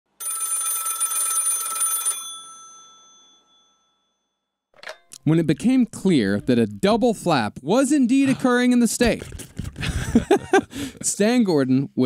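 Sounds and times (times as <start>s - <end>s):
old telephone bell ringing: 0.2s - 4.4s.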